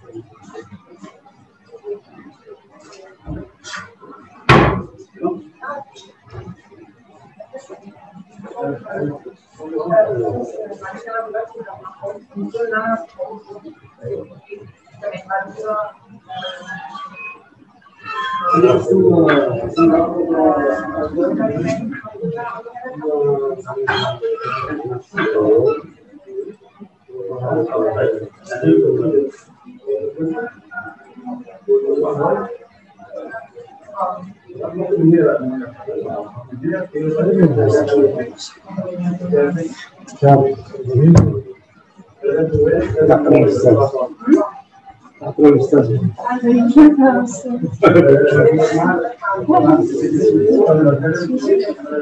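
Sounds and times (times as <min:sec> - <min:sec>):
faint talk: 0:00.0 - 0:52.0
loud thump: 0:04.5 - 0:05.0.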